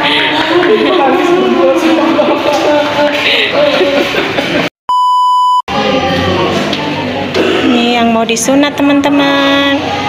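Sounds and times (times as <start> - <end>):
high-pitched electronic bleep: 4.9 - 5.6.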